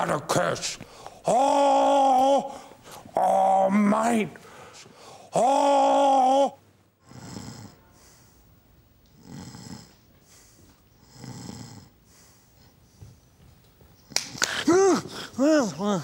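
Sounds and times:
man snoring: 7.0s - 7.8s, 9.2s - 9.9s, 11.0s - 12.0s.

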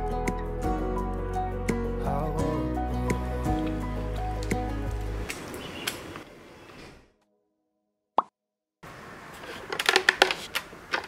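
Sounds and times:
background music: 0.0s - 5.5s.

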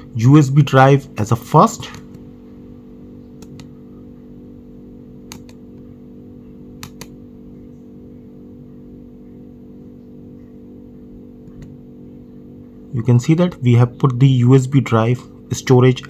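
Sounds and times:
steady low hum: 0.0s - 16.0s
computer mouse clicks: 3.4s - 3.7s, 5.3s - 5.6s, 6.8s - 7.1s.

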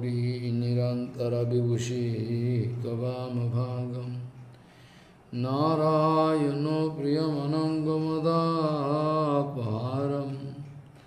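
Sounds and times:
man chanting a prayer: 0.0s - 4.3s, 5.3s - 10.8s.

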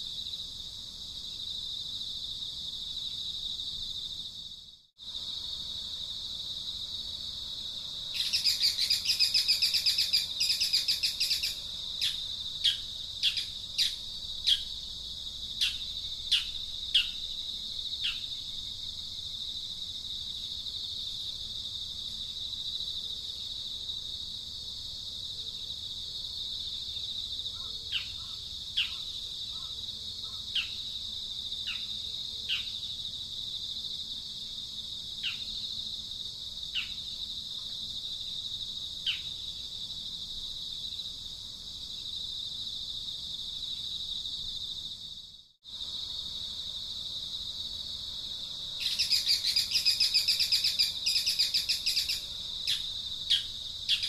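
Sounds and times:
high insect drone: 0.0s - 54.0s.

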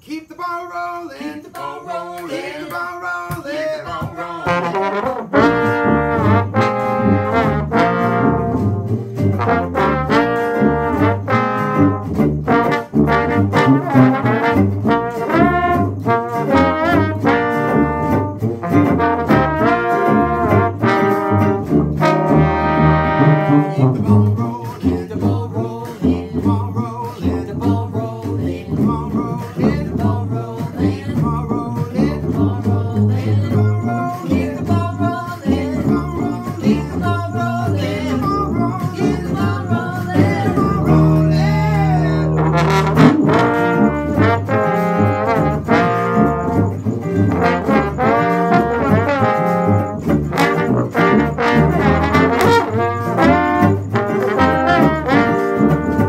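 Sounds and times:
sousaphone bass: 4.0s - 56.0s
strummed guitar: 4.0s - 56.0s
trombone and trumpet: 4.0s - 56.0s.

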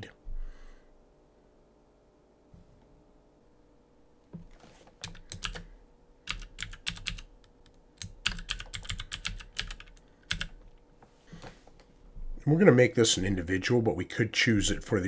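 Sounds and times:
keyboard typing: 5.0s - 5.7s, 6.3s - 10.8s.

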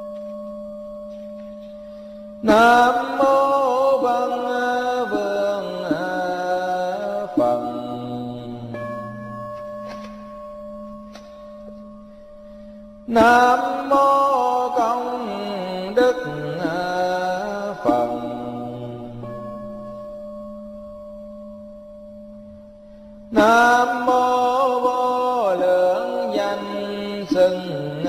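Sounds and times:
person chanting: 2.4s - 10.2s, 13.1s - 20.1s, 23.3s - 28.0s.

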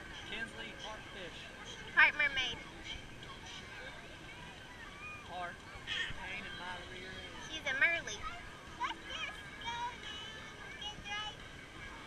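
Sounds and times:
crowd noise hiss: 0.0s - 12.0s
children calling and shouting: 1.5s - 6.2s, 7.2s - 12.0s.

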